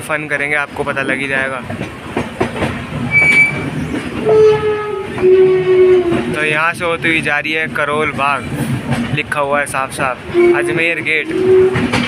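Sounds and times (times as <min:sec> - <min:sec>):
train wheels clattering over rails: 0:00.4 - 0:12.0
high wheel squeal: 0:03.1 - 0:04.6
train horn: 0:03.1 - 0:06.4, 0:10.2 - 0:12.0.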